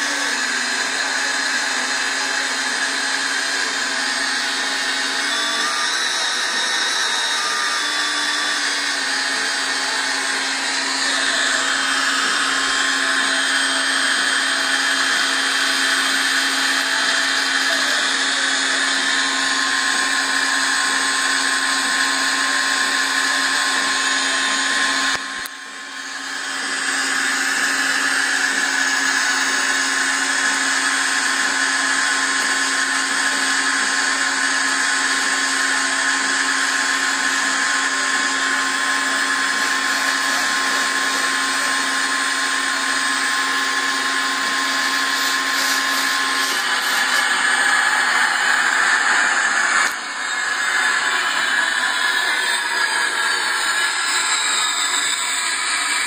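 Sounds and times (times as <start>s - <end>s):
fan whirring with hum: 38.8s - 56.0s.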